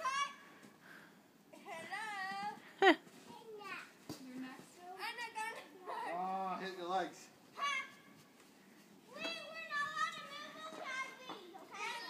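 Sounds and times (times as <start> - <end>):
children shouting at play: 0.0 - 0.5, 7.5 - 8.2, 9.1 - 12.0.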